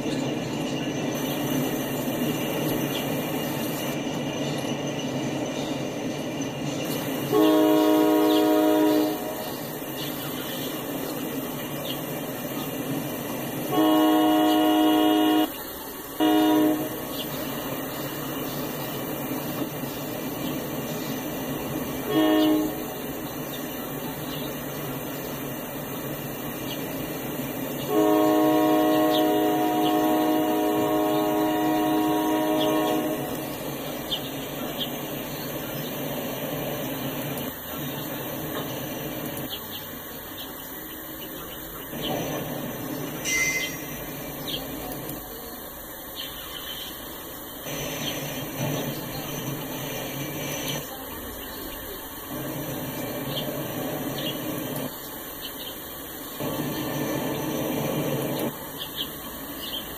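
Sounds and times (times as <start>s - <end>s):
train rolling past: 0.0s - 59.9s
locomotive horn blasts: 7.2s - 9.7s, 13.6s - 17.2s, 22.0s - 23.3s, 27.8s - 33.6s.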